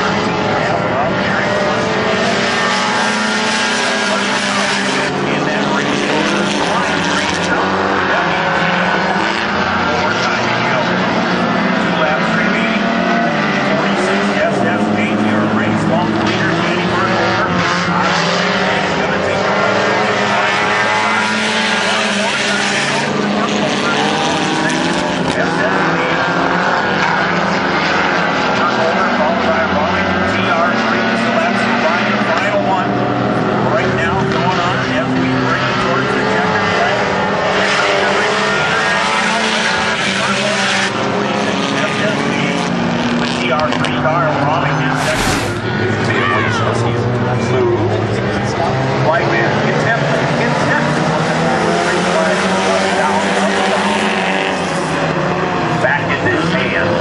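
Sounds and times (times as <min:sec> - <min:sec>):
race car engines revving: 0:00.0 - 0:57.0.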